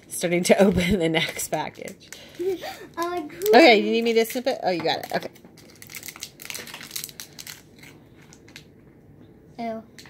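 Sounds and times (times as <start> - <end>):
plastic wrapper crinkling: 1.3 - 8.7.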